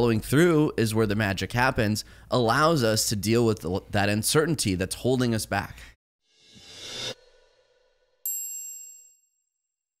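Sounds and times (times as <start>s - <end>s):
high-pitched electronic ding: 8.3s - 9.2s.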